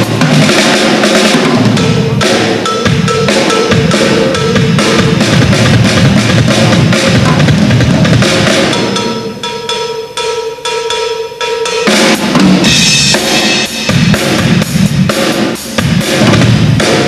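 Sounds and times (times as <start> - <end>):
drum solo: 0.0 - 17.0
ringing cymbals: 0.0 - 17.0.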